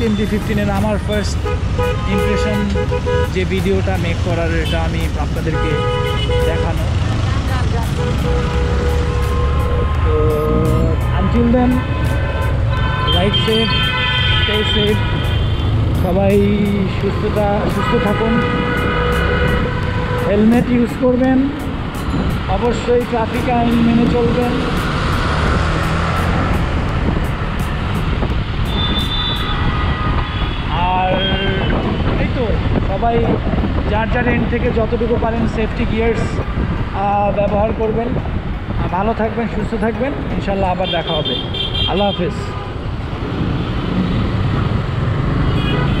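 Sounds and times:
motorcycle engine and road noise: 0:00.0 - 0:46.0
traffic rumble: 0:00.0 - 0:46.0
vehicle horn toot: 0:05.5 - 0:06.7, 0:07.9 - 0:10.1, 0:11.4 - 0:15.6, 0:28.7 - 0:31.8, 0:45.6 - 0:46.0
wind rushing over microphone: 0:14.5 - 0:40.7.

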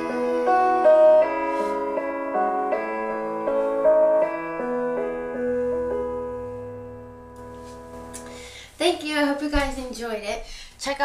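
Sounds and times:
piano playing slow chords: 0:00.0 - 0:08.7.

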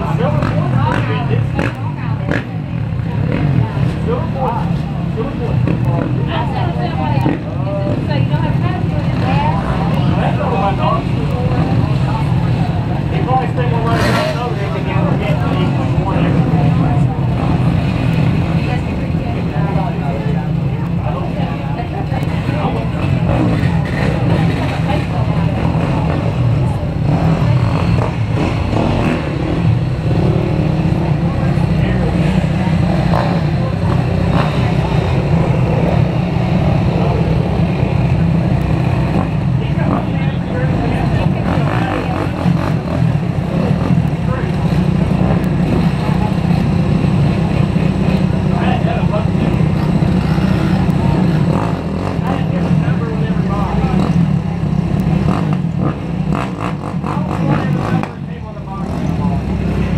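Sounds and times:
dirt bike engines droning: 0:00.0 - 0:59.9.

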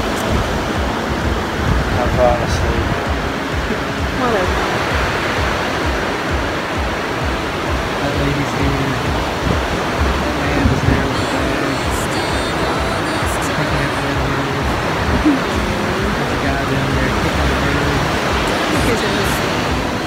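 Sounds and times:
background music of held notes: 0:00.0 - 0:20.0
ocean surf washing up beach: 0:00.0 - 0:20.0.

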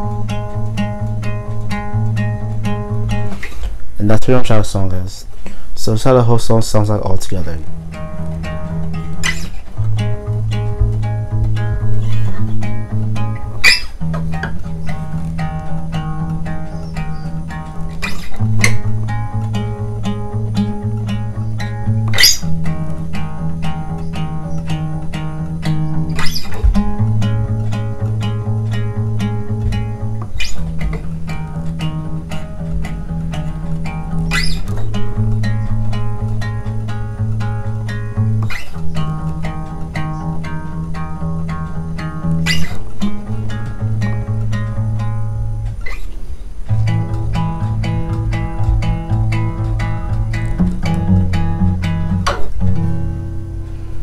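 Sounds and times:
acoustic guitar picking: 0:00.0 - 0:54.0.

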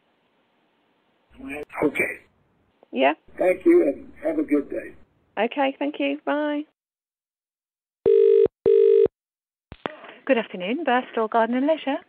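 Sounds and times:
telephone ringing tone: 0:08.0 - 0:09.1.

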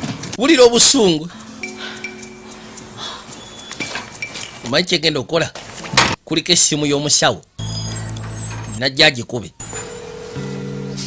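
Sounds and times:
low steady hum: 0:00.4 - 0:10.5
steady higher tone: 0:01.2 - 0:04.7.

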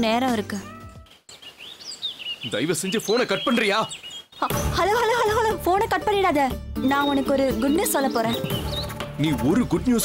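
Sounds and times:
faint outdoor hiss: 0:00.0 - 0:04.5
small birds chirping: 0:00.4 - 0:05.5, 0:06.8 - 0:09.8.

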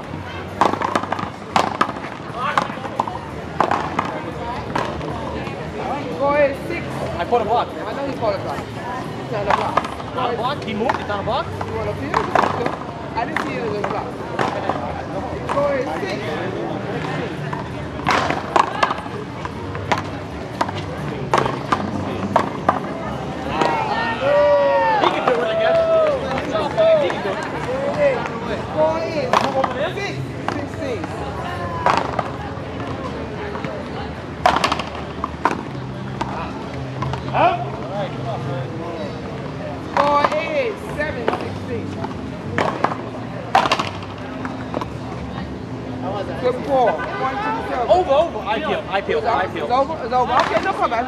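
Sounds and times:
ball hitting wall and court: 0:00.5 - 0:05.1, 0:17.0 - 0:22.9, 0:34.4 - 0:37.4, 0:42.5 - 0:44.9.

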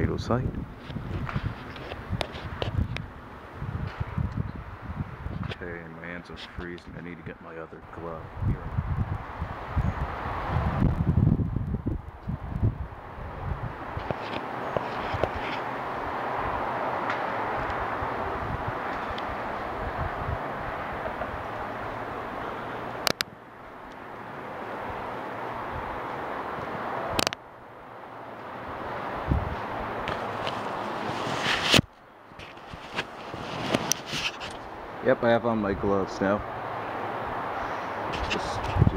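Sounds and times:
strong wind blowing: 0:00.0 - 0:23.2, 0:24.0 - 0:27.3, 0:27.9 - 0:31.9, 0:32.5 - 0:38.9
wind buffeting microphone: 0:00.0 - 0:23.2, 0:28.7 - 0:36.5, 0:37.2 - 0:38.9.

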